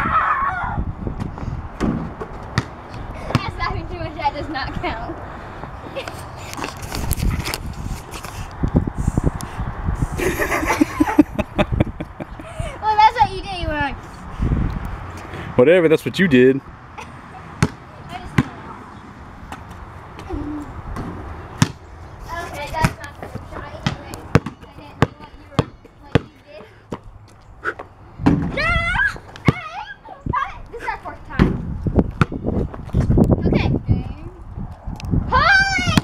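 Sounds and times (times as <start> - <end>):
basketball bouncing on concrete: 1.2 - 3.8, 17.6 - 18.6, 20.9 - 21.8, 22.6 - 27.1, 29.3 - 29.8, 31.3 - 33.2.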